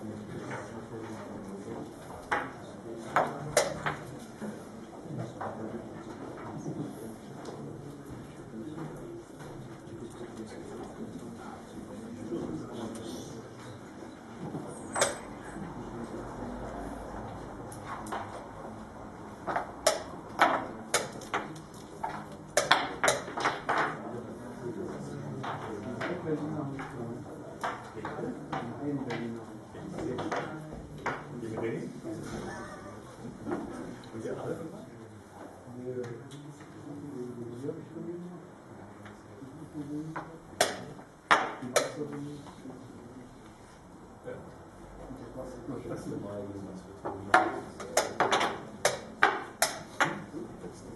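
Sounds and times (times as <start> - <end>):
chess pieces knocking on wooden board: 19.4 - 24.0, 47.3 - 50.3.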